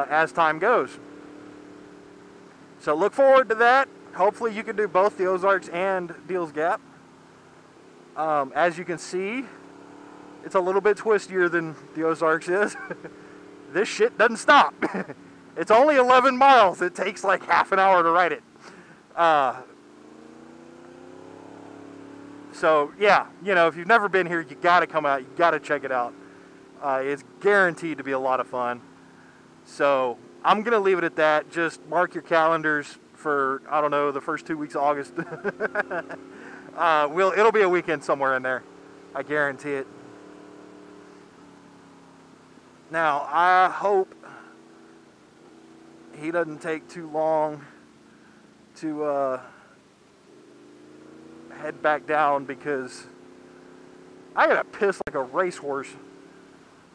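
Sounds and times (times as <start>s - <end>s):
motorcycle engine accelerating: 0.0s - 56.9s.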